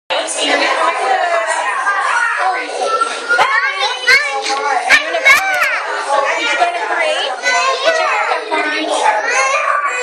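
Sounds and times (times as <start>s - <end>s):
young children chattering: 0.1s - 10.0s.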